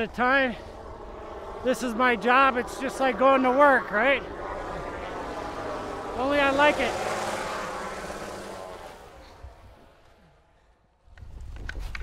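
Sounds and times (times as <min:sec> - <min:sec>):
propeller plane engine drone: 0:00.0 - 0:11.1.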